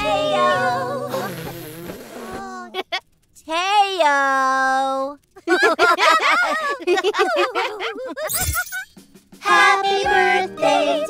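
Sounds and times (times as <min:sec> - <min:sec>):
giggling: 0:05.4 - 0:08.4.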